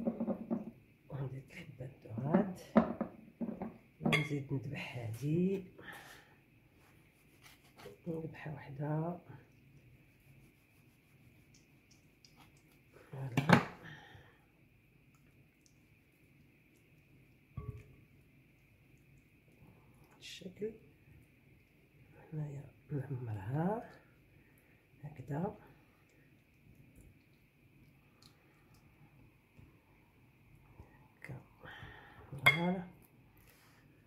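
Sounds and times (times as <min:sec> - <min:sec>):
faint steady hum: 0:00.0 - 0:34.0
clink against glass bowl: 0:04.0 - 0:04.3, 0:17.6 - 0:17.9, 0:32.4 - 0:32.7
spatula knocking glass bowl: 0:17.6 - 0:17.9.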